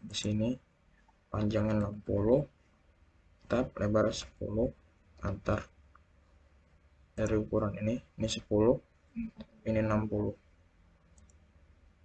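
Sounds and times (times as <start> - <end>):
person speaking: 0.0 - 0.7, 1.3 - 2.6, 3.4 - 5.8, 7.1 - 10.4
low steady hum: 0.0 - 12.0
computer mouse clicks: 11.0 - 11.5.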